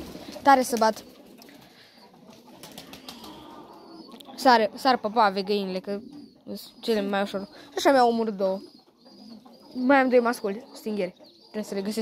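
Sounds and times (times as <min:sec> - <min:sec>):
pigeon wings fluttering: 0:00.0 - 0:03.4
pigeons cooing: 0:00.0 - 0:12.0.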